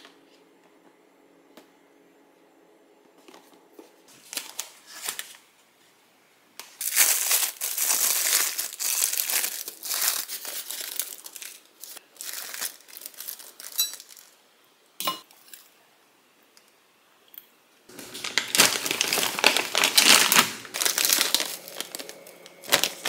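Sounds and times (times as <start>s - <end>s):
plastic bag crinkling: 4.1s - 5.4s, 6.7s - 14.4s, 17.9s - 23.0s.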